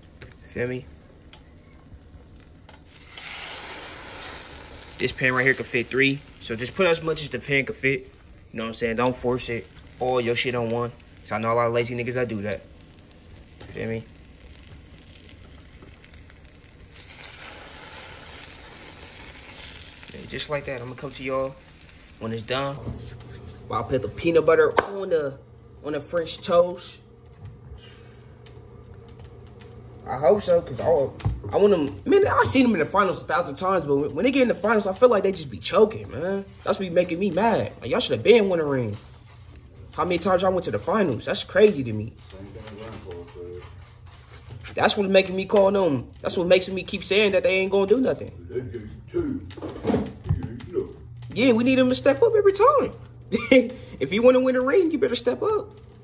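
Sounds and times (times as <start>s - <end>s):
bread sizzling in a pan: 0.0s - 56.0s
steady low hum: 0.0s - 56.0s.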